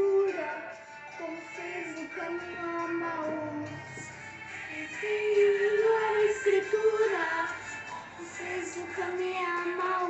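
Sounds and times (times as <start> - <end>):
musical accompaniment: 0.0 - 10.0
person singing religious song: 0.0 - 10.0.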